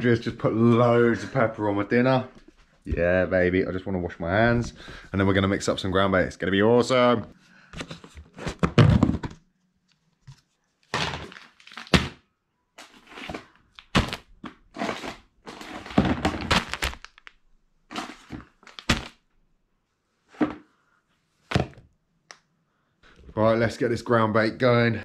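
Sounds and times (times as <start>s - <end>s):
objects knocking and thunking: 7.8s - 9.5s, 10.9s - 12.2s, 12.8s - 16.9s, 20.3s - 20.7s, 21.5s - 21.9s.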